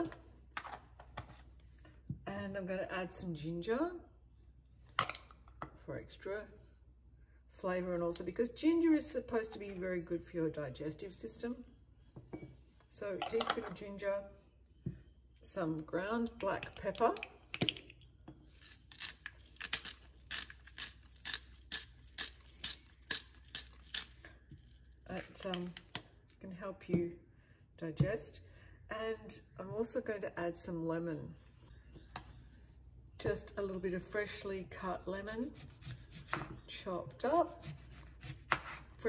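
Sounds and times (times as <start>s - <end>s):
kitchen items clinking: 13.2s - 13.8s
pepper grinder crunching peppercorns: 18.5s - 25.4s.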